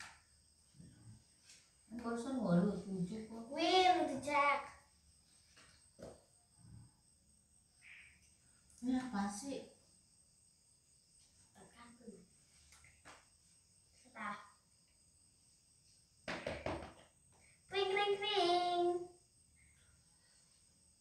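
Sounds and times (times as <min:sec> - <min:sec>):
crickets chirring: 0:00.0 - 0:21.0
child's voice: 0:02.0 - 0:04.8, 0:14.1 - 0:14.5, 0:17.7 - 0:19.1.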